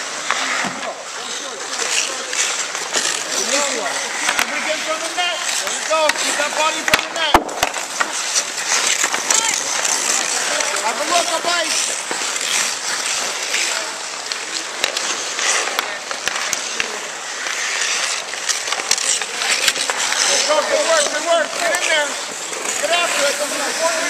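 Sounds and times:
hockey sticks and puck clacking: 0:00.0 - 0:24.0
skate blades scraping ice: 0:00.0 - 0:24.0.

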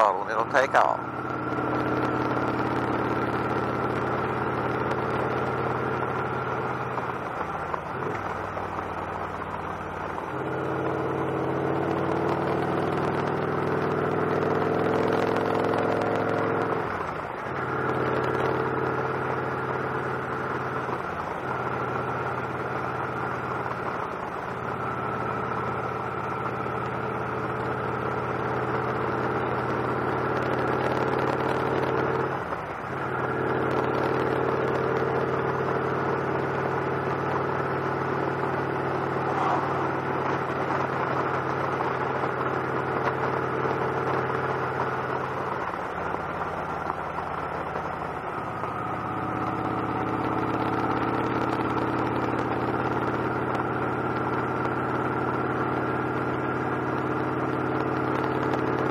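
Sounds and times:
motorcycle engine running: 0:00.0 - 0:58.9.

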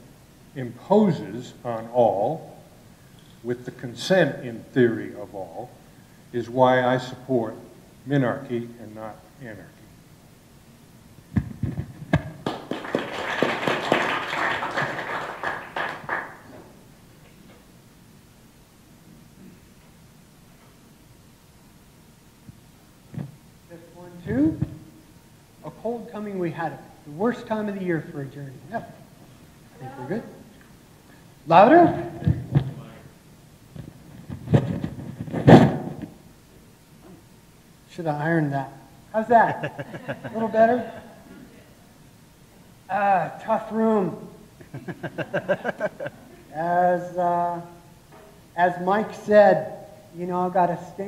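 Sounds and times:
microphone rubbing against shirt: 0:11.3 - 0:12.3, 0:33.7 - 0:36.2
audience applauding: 0:12.4 - 0:16.6.

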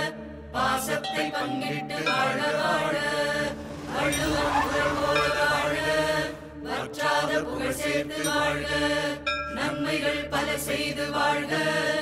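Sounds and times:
group of voices chanting a song: 0:00.0 - 0:12.0
music: 0:00.0 - 0:12.0.

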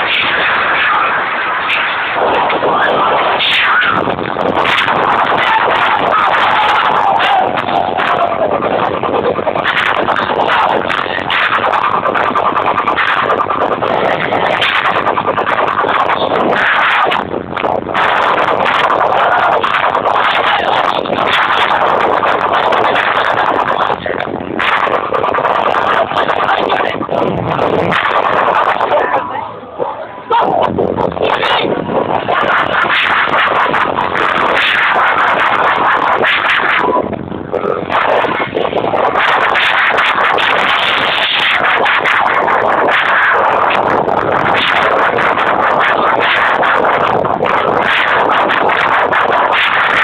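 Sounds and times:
electronic dance music: 0:00.0 - 0:50.0.

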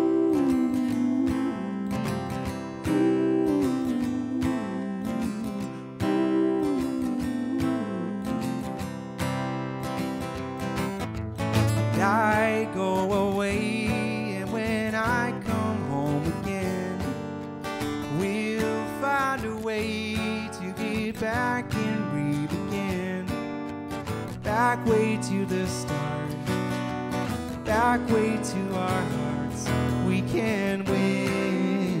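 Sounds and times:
person singing: 0:00.0 - 0:09.0, 0:11.8 - 0:17.2, 0:18.0 - 0:23.4, 0:24.4 - 0:26.5, 0:27.6 - 0:32.0
acoustic guitar strumming: 0:00.0 - 0:32.0.

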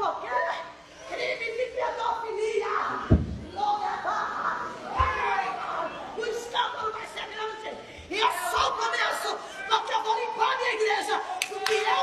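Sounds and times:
sharp hand claps: 0:11.4 - 0:12.0.

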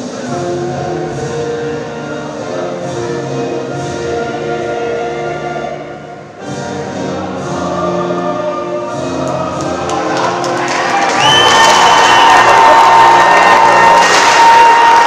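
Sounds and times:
anthem over arena speakers: 0:04.6 - 0:15.0
crowd cheering and applause: 0:09.2 - 0:15.0.

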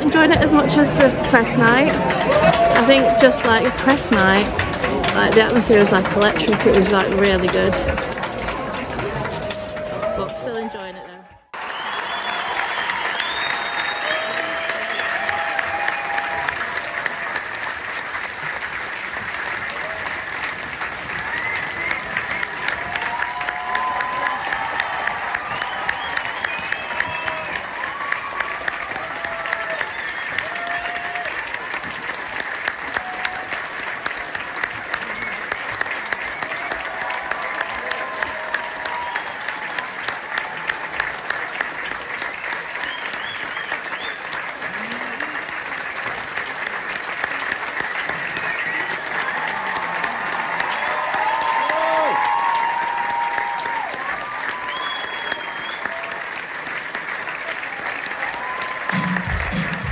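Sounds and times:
audience applauding: 0:00.0 - 0:59.9
whoops and shouts: 0:02.3 - 0:03.4, 0:11.6 - 0:16.7, 0:22.7 - 0:31.5, 0:48.4 - 0:56.2.

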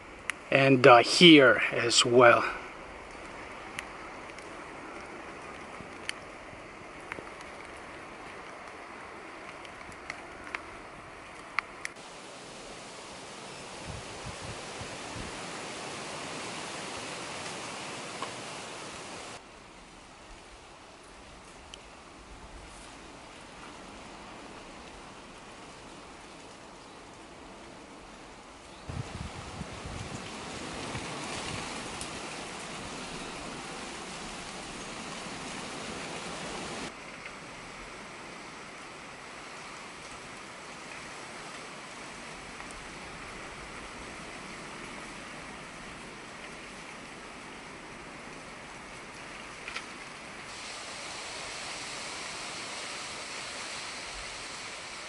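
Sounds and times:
outdoor rushing hiss: 0:11.0 - 0:20.2, 0:27.9 - 0:43.4, 0:50.4 - 0:55.0.

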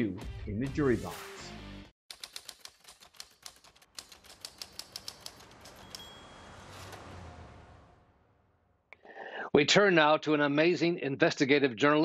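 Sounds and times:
typewriter key clacks: 0:02.1 - 0:06.0.

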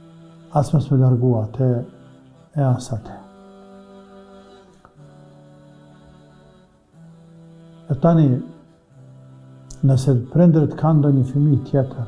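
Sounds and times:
drone-like background music: 0:00.0 - 0:12.0.

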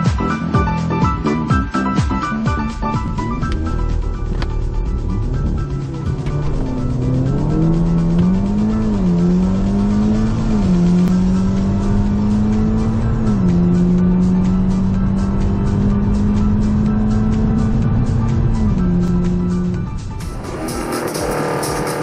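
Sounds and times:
car engine accelerating hard: 0:02.2 - 0:22.0.

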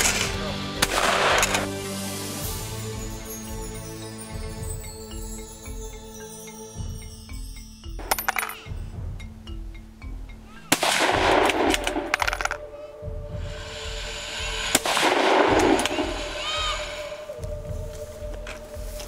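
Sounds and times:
background music: 0:00.0 - 0:19.0
rifle shots: 0:00.8 - 0:01.7, 0:10.7 - 0:12.5, 0:14.8 - 0:16.2.

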